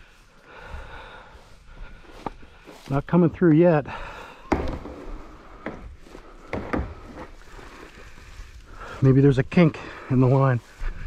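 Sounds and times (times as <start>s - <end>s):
sharp knocks: 4.4s - 5.9s, 6.5s - 7.3s.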